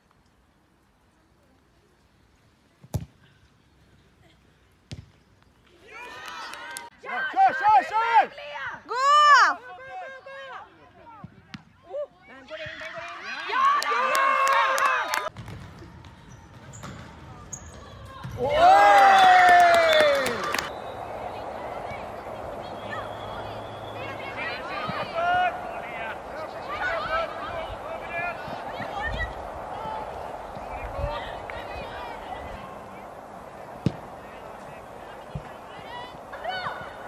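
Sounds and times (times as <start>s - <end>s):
soccer ball kick thud: 2.8s - 3.2s, 4.9s - 5.2s, 15.3s - 18.6s, 33.8s - 34.3s, 35.2s - 37.0s
people shouting and cheering: 5.8s - 10.7s, 11.9s - 15.3s, 17.9s - 37.0s.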